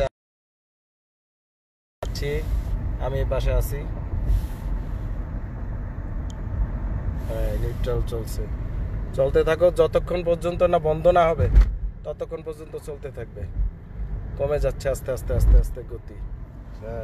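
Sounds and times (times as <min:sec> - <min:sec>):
road and tyre noise in car: 0:02.0 - 0:17.0
man talking: 0:07.2 - 0:08.5, 0:14.4 - 0:16.2, 0:16.8 - 0:17.0.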